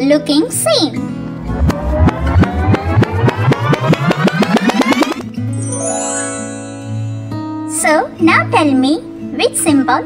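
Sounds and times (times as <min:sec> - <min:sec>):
rising cartoon buzzing pulses: 0:01.4 - 0:05.3.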